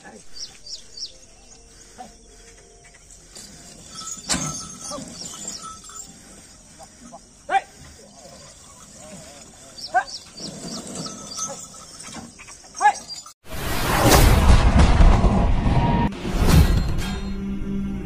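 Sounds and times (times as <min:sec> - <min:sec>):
small high bird chirps: 0:00.3 - 0:02.3.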